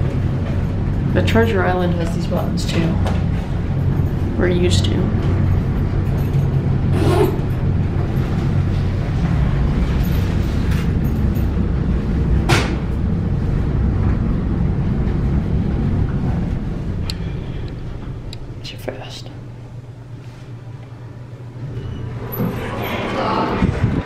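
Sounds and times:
elevator ride rumble: 0.0s - 24.0s.

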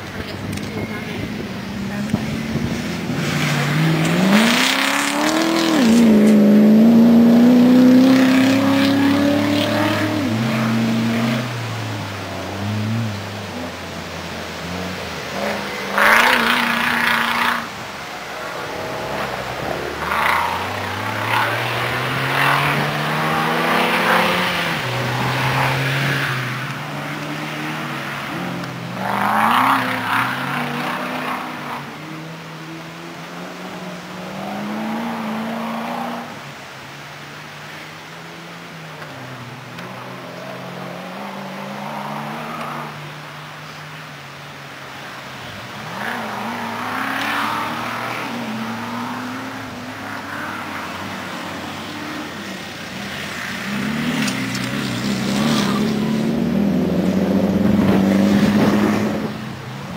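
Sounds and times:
off-road engine revving: 0.0s - 36.8s, 39.0s - 43.8s, 45.0s - 59.9s.

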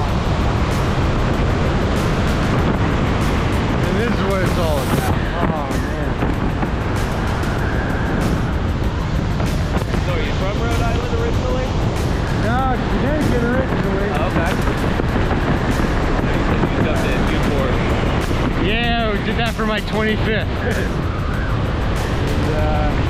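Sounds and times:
background music: 0.0s - 23.0s
wind buffeting microphone: 0.0s - 23.0s.

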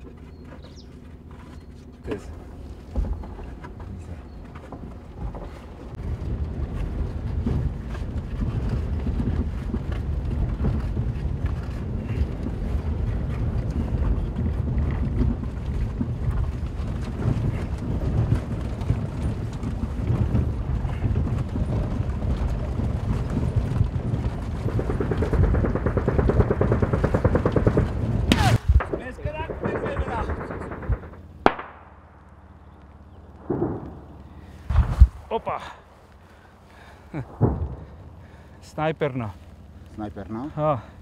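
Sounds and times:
car cabin rumble on rough track: 0.0s - 41.0s.

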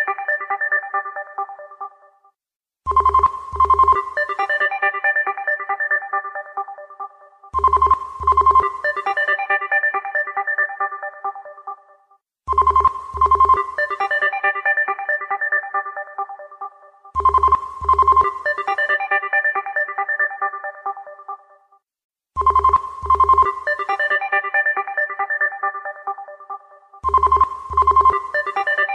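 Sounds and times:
melodic phone ringtone: 2.9s - 11.8s, 12.5s - 21.5s, 22.4s - 28.9s.

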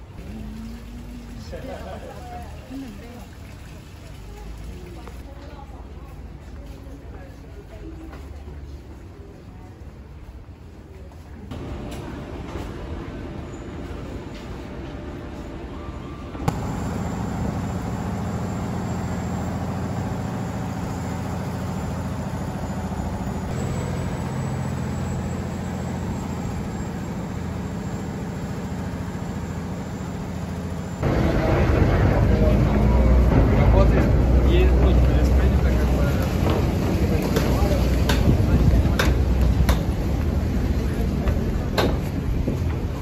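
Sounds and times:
boat engine running: 16.5s - 43.0s.

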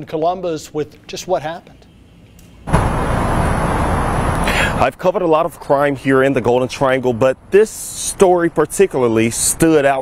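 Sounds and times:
loud steady rush of noise: 2.6s - 5.0s.

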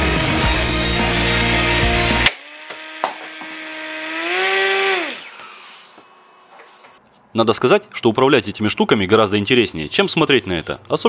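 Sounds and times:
music: 0.0s - 2.3s.

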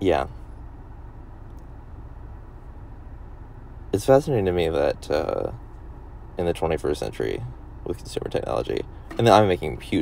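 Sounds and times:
low background rumble: 0.0s - 10.0s
man speaking: 6.4s - 10.0s.

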